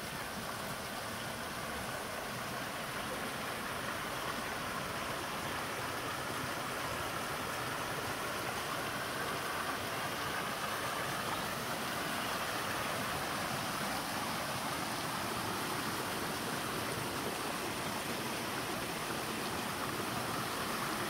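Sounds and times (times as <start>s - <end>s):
stream running over stones: 0.0s - 21.0s.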